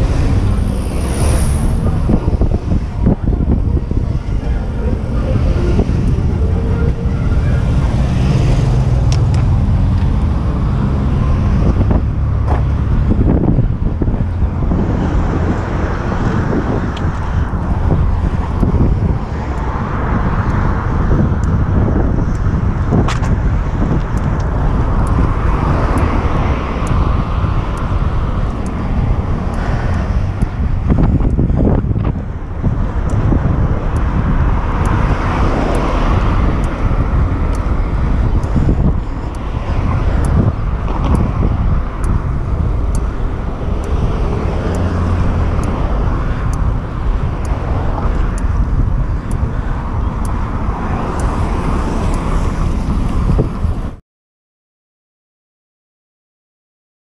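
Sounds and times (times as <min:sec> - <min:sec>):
road traffic noise: 0:00.0 - 0:54.0
wind rumble on microphone: 0:00.0 - 0:54.0.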